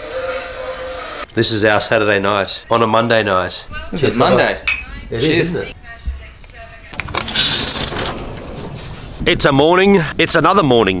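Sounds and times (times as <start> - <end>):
sliding door rollers on track: 7.0 - 9.5
high squeak: 7.2 - 8.2.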